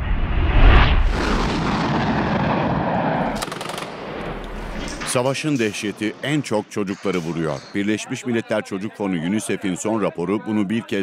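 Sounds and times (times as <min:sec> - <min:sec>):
rumble of blasts and gunfire: 0:00.0 - 0:05.3
automatic gunfire burst: 0:03.4 - 0:04.0.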